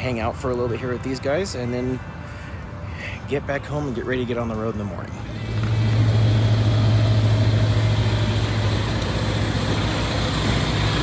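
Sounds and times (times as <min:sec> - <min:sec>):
engine idling: 0:05.2 - 0:11.0.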